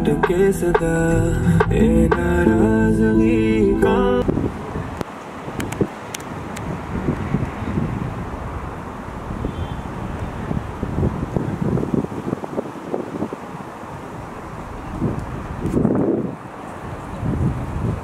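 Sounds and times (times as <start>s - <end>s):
wind buffeting microphone: 4.2s - 18.0s.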